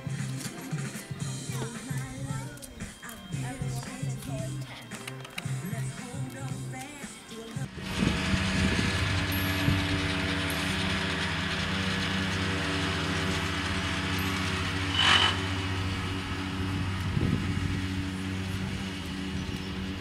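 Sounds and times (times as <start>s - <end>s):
motor engine running steadily: 0.0s - 4.7s, 5.3s - 20.0s.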